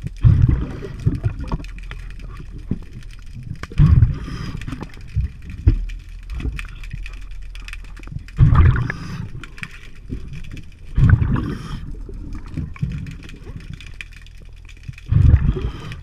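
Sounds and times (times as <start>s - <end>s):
low underwater rumble: 0.0s - 16.0s
small clicks: 0.0s - 16.0s
exhaled breath bubbling underwater: 0.2s - 1.6s, 3.6s - 5.6s, 8.2s - 13.8s, 15.0s - 16.0s.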